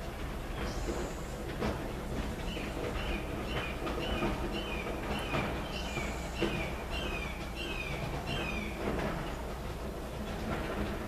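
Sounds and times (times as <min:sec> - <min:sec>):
bird chirping: 0:02.5 - 0:08.8.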